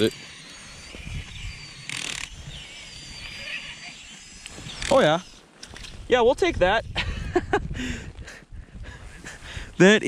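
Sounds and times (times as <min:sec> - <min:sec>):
fishing reel being cranked: 0:00.0 - 0:06.1.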